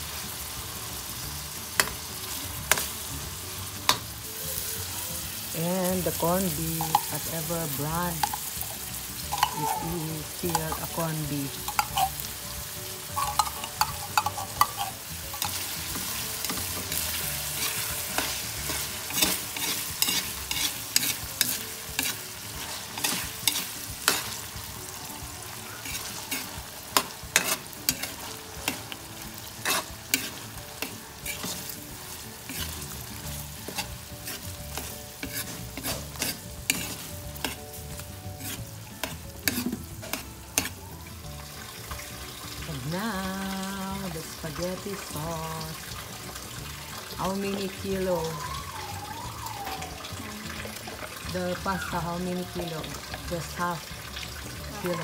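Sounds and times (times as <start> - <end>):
frying oil sizzling: 0.0 - 55.0
metal spatula scraping a wok: 11.6 - 12.4, 13.1 - 24.8, 25.7 - 40.8.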